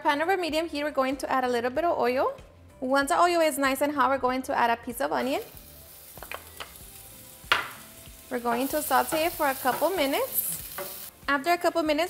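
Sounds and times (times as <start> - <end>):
onion sizzling in hot oil: 5.0 - 12.0.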